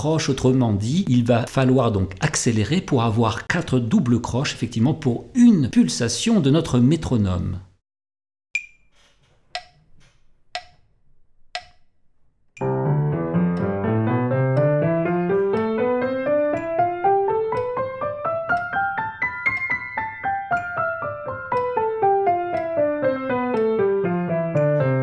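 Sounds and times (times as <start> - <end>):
metronome clicking: 8.6 - 25.0
piano playing scales: 12.6 - 25.0.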